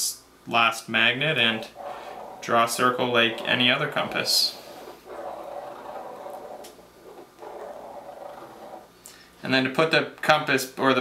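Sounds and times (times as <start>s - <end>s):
pen scratching on paper: 1.4s - 8.9s.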